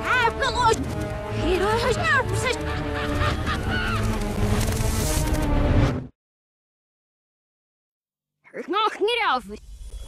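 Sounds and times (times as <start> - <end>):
cartoon background music: 0.0 - 6.1.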